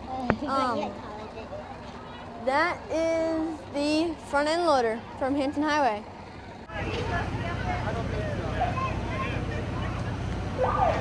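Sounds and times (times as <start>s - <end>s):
crowd chatter: 0.0s - 11.0s
large vehicles idling: 0.0s - 11.0s.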